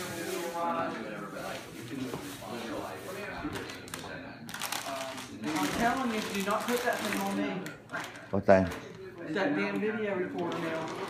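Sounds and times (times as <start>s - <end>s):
rustling handling noises: 0.0s - 9.2s.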